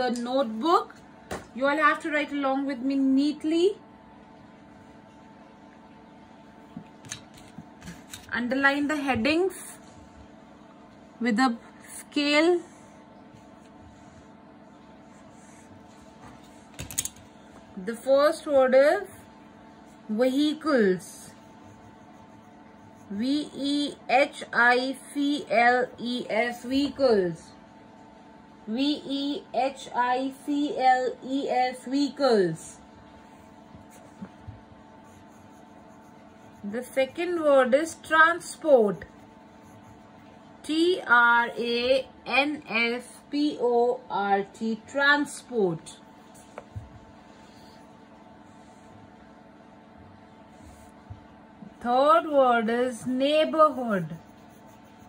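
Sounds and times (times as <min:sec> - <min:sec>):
faint steady hum: 0:00.0 - 0:55.0
pencil writing on paper: 0:19.8 - 0:23.7, 0:33.2 - 0:40.4, 0:52.8 - 0:55.0.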